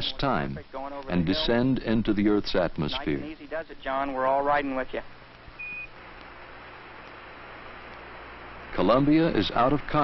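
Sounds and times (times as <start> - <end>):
radio hiss and low hum: 0.0 - 10.0
short beep: 5.6 - 5.9.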